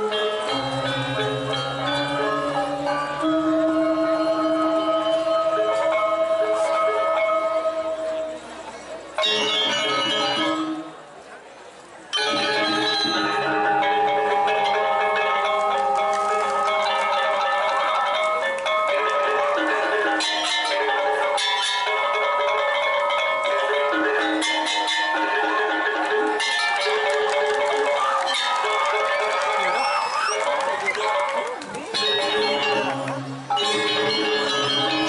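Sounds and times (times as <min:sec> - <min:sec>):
metallophones ringing: 0:00.0 - 0:08.5, 0:09.2 - 0:11.0, 0:12.1 - 0:29.8, 0:31.8 - 0:35.0.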